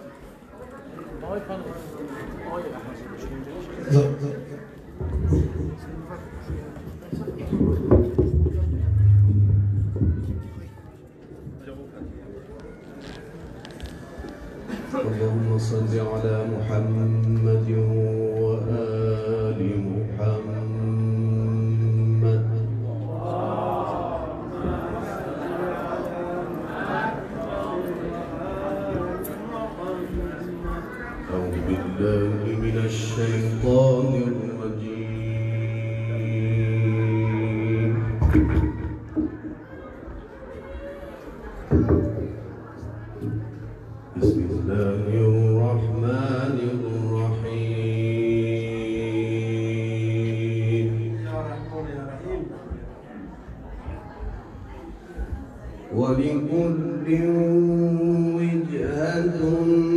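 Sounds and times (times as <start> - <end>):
man chanting through loudspeakers: 15.0 - 23.2, 28.5 - 39.0, 44.2 - 52.2, 55.9 - 59.9
man chanting long notes: 32.3 - 38.4.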